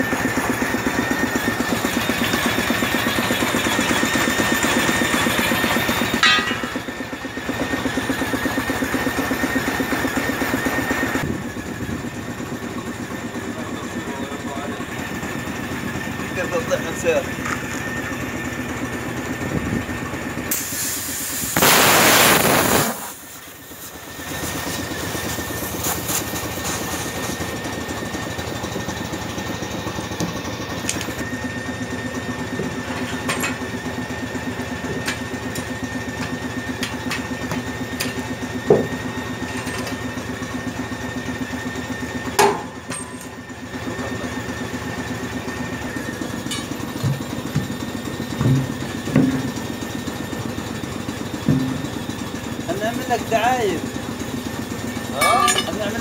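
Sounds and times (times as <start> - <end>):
engine running: 0.0 - 56.0
air hissing from tyre hose: 20.5 - 27.8.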